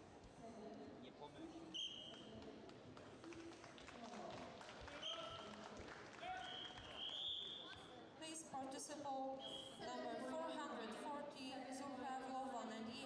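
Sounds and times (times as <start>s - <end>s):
indistinct voices in a hall: 0.0s - 13.0s.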